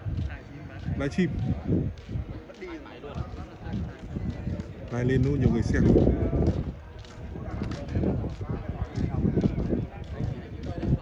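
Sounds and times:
footsteps on rubber track: 0:00.0 - 0:11.0
men talking: 0:00.0 - 0:11.0.

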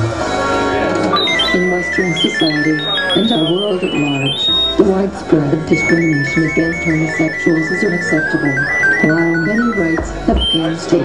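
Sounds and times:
high electronic trill: 0:01.1 - 0:04.8, 0:05.7 - 0:10.6
electronic bending notes: 0:01.1 - 0:10.8.

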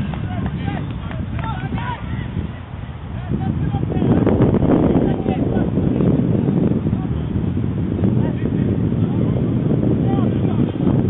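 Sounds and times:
distant players shouting: 0:00.0 - 0:02.6
wind rumble on microphone: 0:00.0 - 0:11.0.

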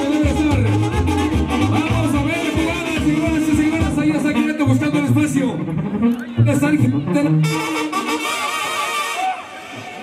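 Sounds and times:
saxophone melody: 0:00.0 - 0:09.7
brass band playing: 0:00.0 - 0:10.0.

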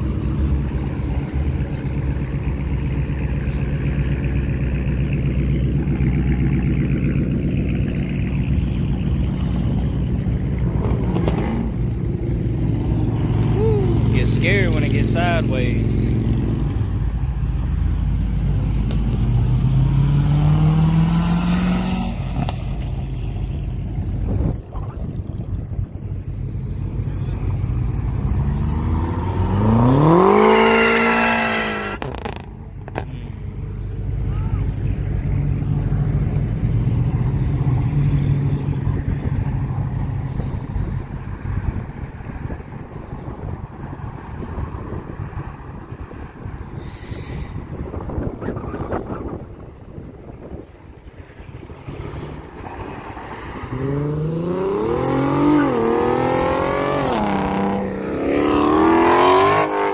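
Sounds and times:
car engine revving: 0:00.0 - 0:25.8, 0:26.4 - 0:41.5, 0:51.6 - 0:59.9
low rumble of traffic: 0:00.0 - 0:59.9
car accelerating past: 0:27.6 - 0:33.1, 0:51.8 - 0:59.9.

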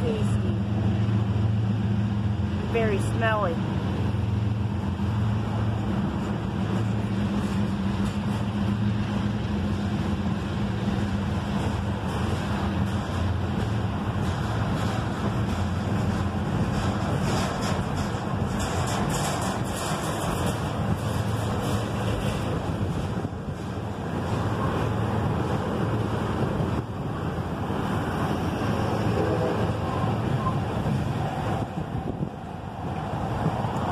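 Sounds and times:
freight train cars rolling: 0:00.0 - 0:33.9.

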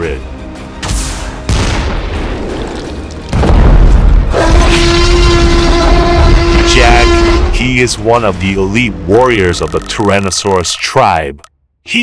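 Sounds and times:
background music: 0:00.0 - 0:12.0
deep boom: 0:03.3 - 0:04.4.

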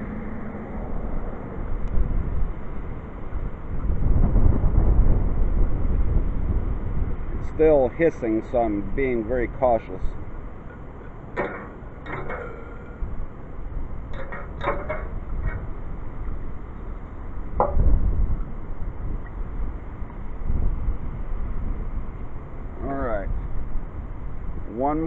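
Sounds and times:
wind buffeting microphone: 0:00.0 - 0:25.0.

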